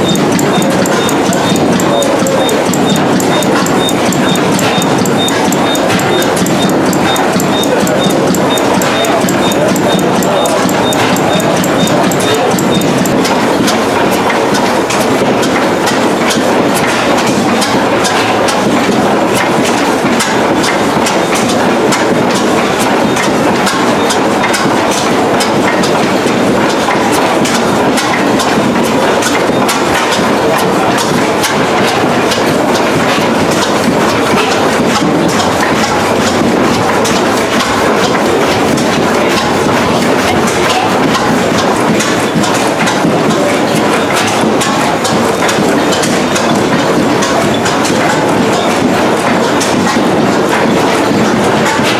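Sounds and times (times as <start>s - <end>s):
stationary engines clattering: 0.0s - 51.9s.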